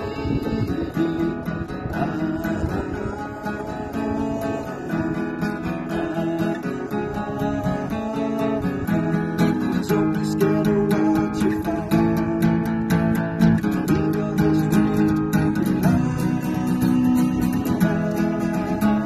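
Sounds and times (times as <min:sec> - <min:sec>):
acoustic guitar strumming: 0:00.0 - 0:19.0
man singing: 0:00.0 - 0:19.0.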